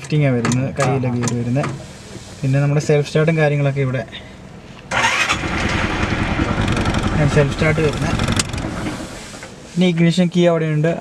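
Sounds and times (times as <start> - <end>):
man talking: 0.0 - 4.3, 7.0 - 8.4, 9.8 - 11.0.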